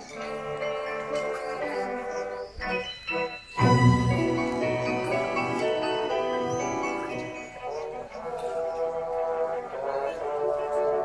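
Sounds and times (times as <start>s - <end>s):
orchestra playing held notes: 0.0s - 11.0s.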